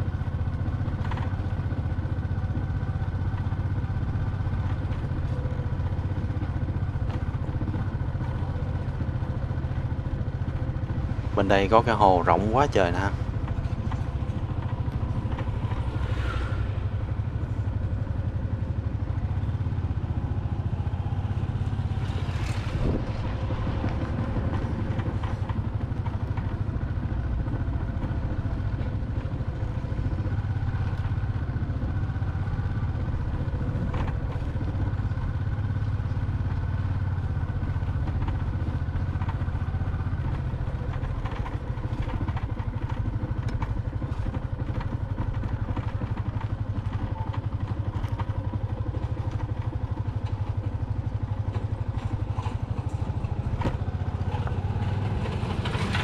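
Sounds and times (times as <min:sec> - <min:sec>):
knocks and rattles from bike: 0:00.0 - 0:56.0
motorbike engine running: 0:00.0 - 0:56.0.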